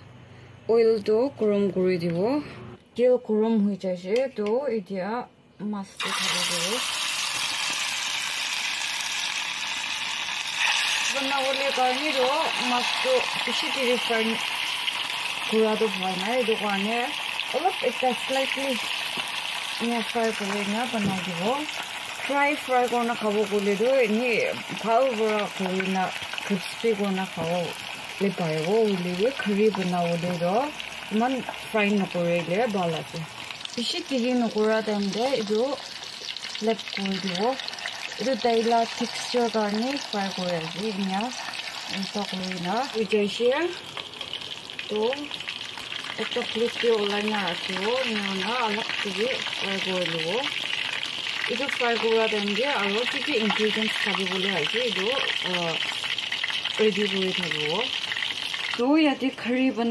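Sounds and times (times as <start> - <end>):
fish sizzling in oil: 6.0 - 59.9.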